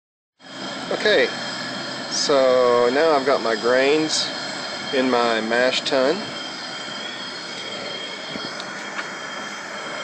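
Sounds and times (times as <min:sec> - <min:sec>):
gas burner rushing: 0:00.4 - 0:10.0
high-pitched whistling tones: 0:01.0 - 0:10.0.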